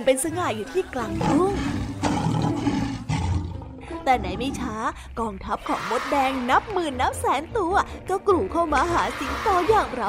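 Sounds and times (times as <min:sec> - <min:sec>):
lion roaring: 0:01.1 - 0:04.6.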